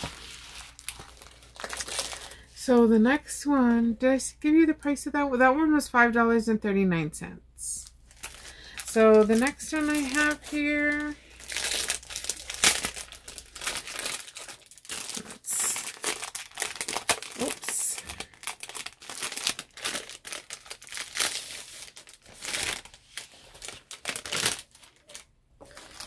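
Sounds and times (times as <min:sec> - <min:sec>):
packaging crinkling and rustling: 0:00.0 - 0:02.5, 0:07.9 - 0:26.0.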